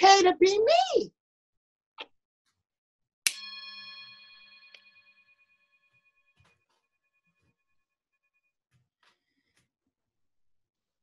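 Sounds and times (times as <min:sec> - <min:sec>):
singing bowl ringing: 0:03.3 - 0:08.5.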